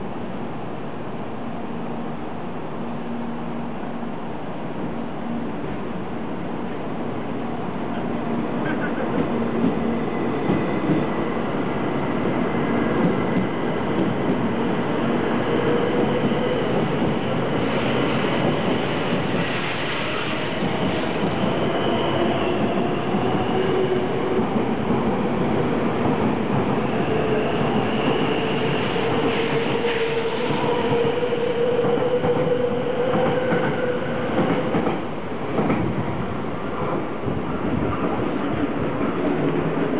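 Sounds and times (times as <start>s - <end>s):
train running noise: 0.0s - 39.9s.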